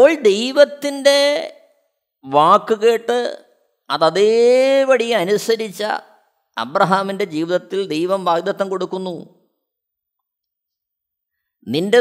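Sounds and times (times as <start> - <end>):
man speaking: 2.2 - 9.3, 11.6 - 12.0.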